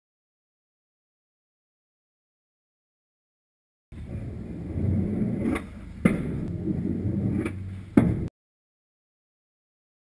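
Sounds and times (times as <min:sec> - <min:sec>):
skateboard wheels rolling on concrete: 0:03.9 - 0:08.3
skateboard clack: 0:04.0 - 0:08.3.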